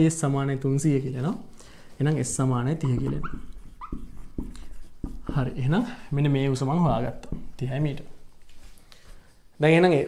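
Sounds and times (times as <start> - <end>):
marker squeaking on whiteboard: 2.6 - 5.8
marker tapping on whiteboard: 2.8 - 5.8, 6.9 - 7.7.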